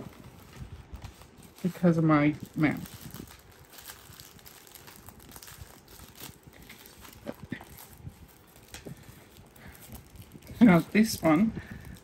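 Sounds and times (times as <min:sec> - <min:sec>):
plastic packaging handled: 0:00.0 - 0:12.0.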